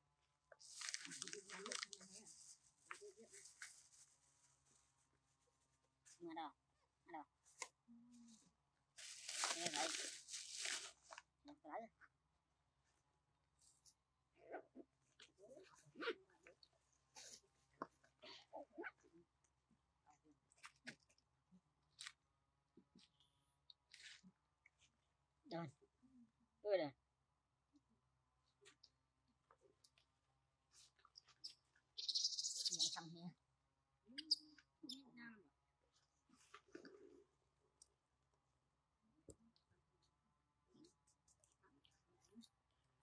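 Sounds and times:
crinkling and crunching: 0.6 - 4.0, 9.0 - 11.2
soft animal noises: 30.7 - 33.4, 34.0 - 37.6
sharp bird chirps: 31.4 - 33.1.

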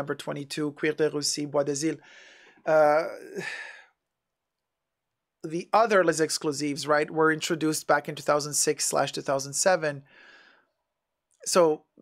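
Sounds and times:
breathy sigh: 2.0 - 4.0
man saying uh: 2.7 - 3.7.

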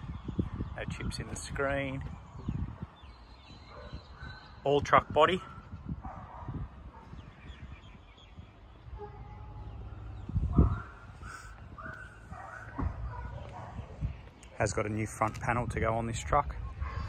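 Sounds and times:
low thump: 12.7 - 13.1.

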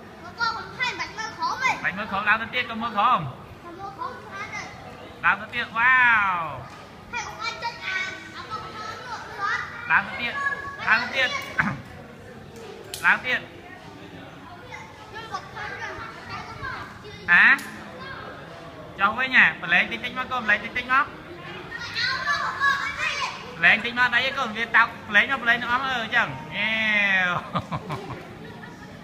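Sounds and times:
children calling and chattering: 0.0 - 29.0.

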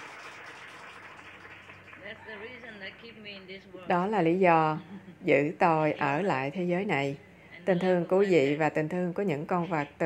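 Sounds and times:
people applauding: 0.0 - 3.1.

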